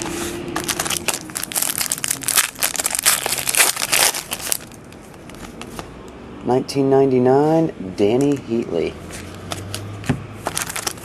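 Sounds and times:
handling of cards: 0.0 - 5.9, 9.1 - 11.0
card pack wrapper crinkling: 0.6 - 5.7, 9.3 - 11.0.

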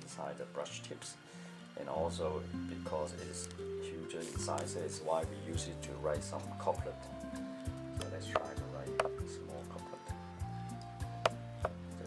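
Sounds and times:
slow background music: 0.0 - 12.0.

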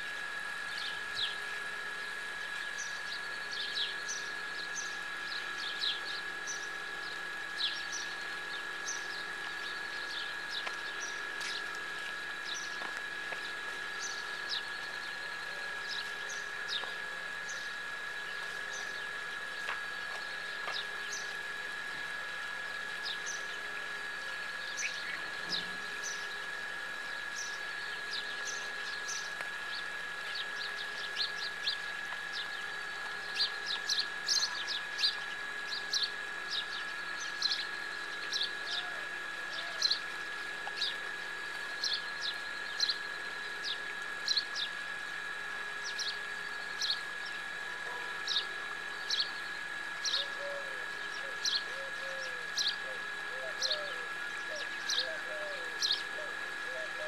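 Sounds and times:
steady high-pitched whine: 0.0 - 57.0
small birds chirping: 2.4 - 21.8, 22.7 - 45.1, 45.8 - 47.5, 48.2 - 57.0.

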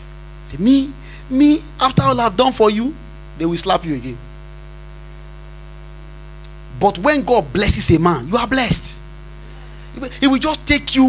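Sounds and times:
electrical mains hum: 0.0 - 11.0
man speaking: 0.5 - 4.3, 6.7 - 9.0, 9.9 - 11.0.

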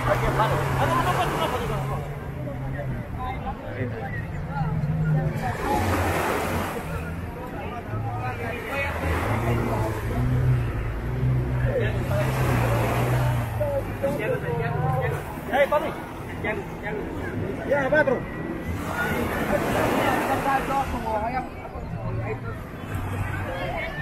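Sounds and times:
boat engines humming: 0.0 - 24.0
crowd chatter: 0.0 - 24.0
waves washing on sand: 5.2 - 7.3.

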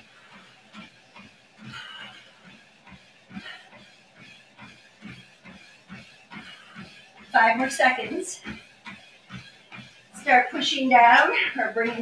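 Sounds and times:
footfalls on treadmill belt: 0.0 - 12.0.

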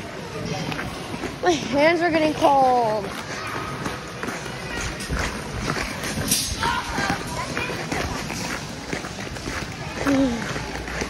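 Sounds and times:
faint voices: 0.0 - 11.0
ice skate blades scraping: 3.0 - 11.0.

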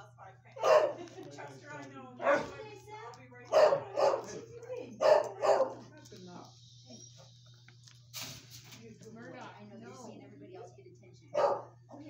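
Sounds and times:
dog barking: 0.6 - 1.1, 2.2 - 2.6, 3.5 - 5.9, 11.3 - 11.8.

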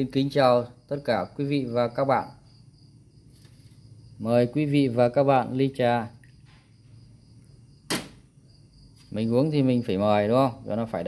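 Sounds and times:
faint insect chirring: 0.0 - 11.0.

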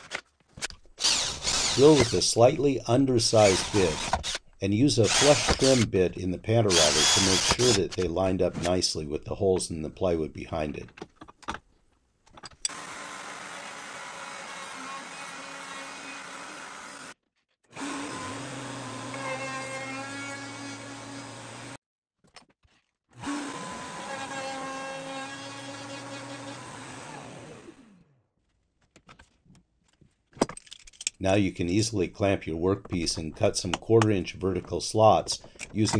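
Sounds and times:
router motor running: 1.0 - 2.1, 5.1 - 5.8, 6.8 - 7.8, 12.7 - 17.1, 17.8 - 21.8, 23.2 - 28.0.

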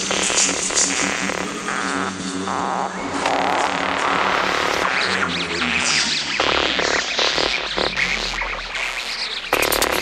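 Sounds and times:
steady low tone: 0.0 - 7.2
buzzing synthesizer textures: 0.0 - 10.0.

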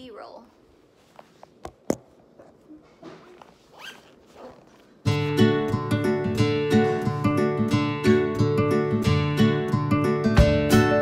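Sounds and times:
bag and fabric rustling: 2.2 - 5.2
acoustic guitar music: 5.0 - 11.0.

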